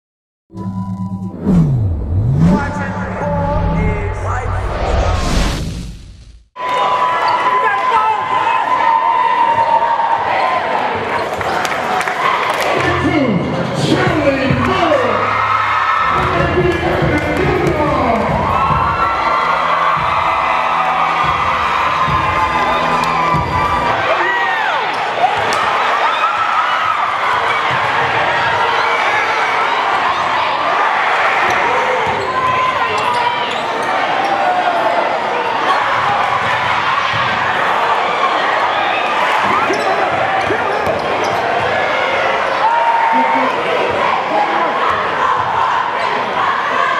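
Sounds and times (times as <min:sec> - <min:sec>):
steady high tone: 0:00.5 - 0:05.9
crowd chatter and shouts: 0:06.6 - 0:46.9
spectators chattering: 0:27.4 - 0:46.9.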